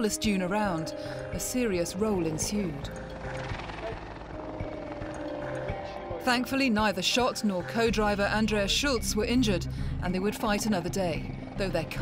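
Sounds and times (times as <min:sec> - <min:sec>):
background music: 0:00.0 - 0:12.0
helicopter rotor beating: 0:00.5 - 0:12.0.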